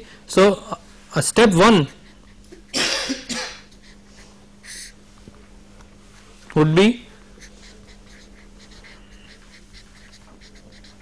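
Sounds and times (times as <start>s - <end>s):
person coughing: 2.6s - 3.8s.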